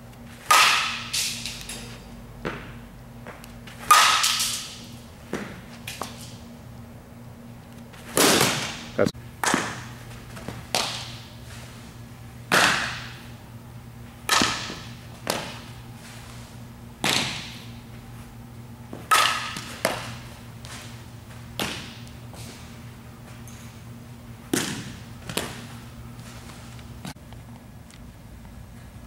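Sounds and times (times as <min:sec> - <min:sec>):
bat hitting ball: 0:00.4 - 0:01.8, 0:03.8 - 0:06.3, 0:08.1 - 0:11.3, 0:12.5 - 0:13.4, 0:14.2 - 0:15.8, 0:17.0 - 0:17.7, 0:18.9 - 0:20.2, 0:21.6 - 0:22.1, 0:24.5 - 0:25.6.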